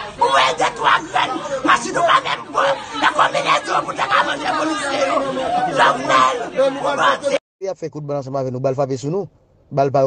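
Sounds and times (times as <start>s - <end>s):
elderly woman crying and wailing: 0.0s - 7.4s
voices talking over one another: 0.0s - 7.4s.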